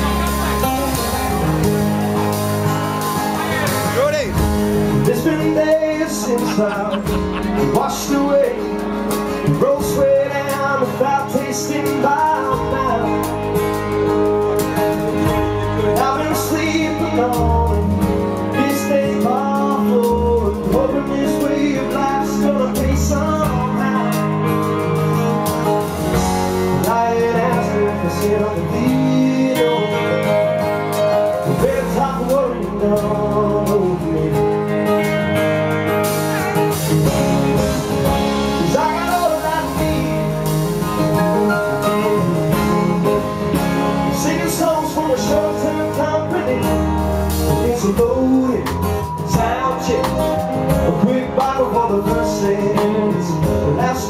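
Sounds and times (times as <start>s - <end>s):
live band playing: 0.0s - 54.0s
strummed acoustic guitar: 0.0s - 54.0s
man singing: 3.3s - 14.4s, 15.1s - 54.0s.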